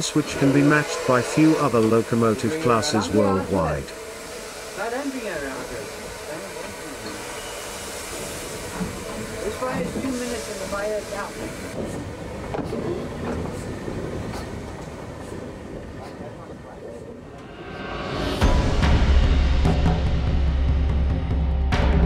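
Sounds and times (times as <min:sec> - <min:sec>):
locomotive running noise: 0:00.0 - 0:18.9
steam hissing: 0:00.0 - 0:20.1
faint voices: 0:08.6 - 0:17.4.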